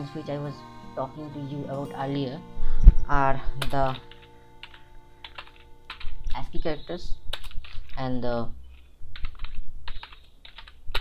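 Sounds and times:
computer keyboard typing: 3.6s - 6.2s, 7.3s - 8.1s, 8.7s - 11.0s.

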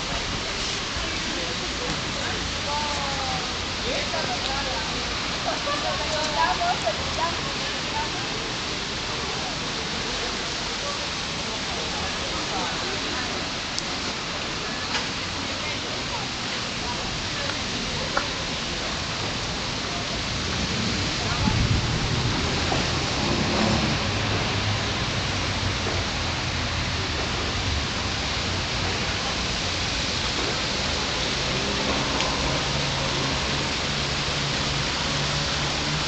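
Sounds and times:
even outdoor hiss: 0.0s - 36.0s.

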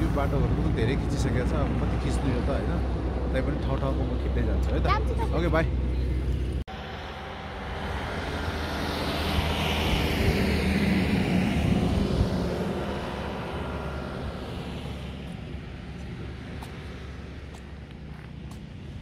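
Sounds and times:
vehicle passing: 0.0s - 19.0s.

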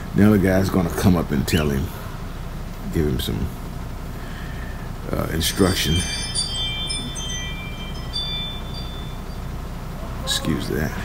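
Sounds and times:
diesel truck engine idling: 0.0s - 11.0s
high chime-like ringing tones: 5.2s - 10.6s.

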